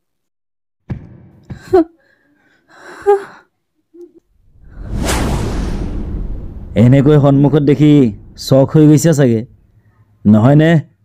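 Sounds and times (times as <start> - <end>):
rushing whoosh and boom: 4.3 - 10.2.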